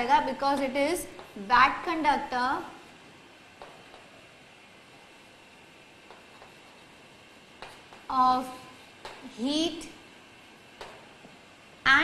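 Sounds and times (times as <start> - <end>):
chalk tapping on blackboard: 0.5 - 1.4, 3.5 - 4.2, 6.0 - 8.2, 8.9 - 9.3, 10.8 - 11.1.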